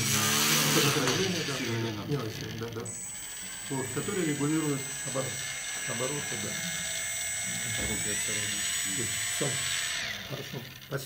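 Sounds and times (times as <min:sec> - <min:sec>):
electric motor whining: 0:00.0 - 0:11.0.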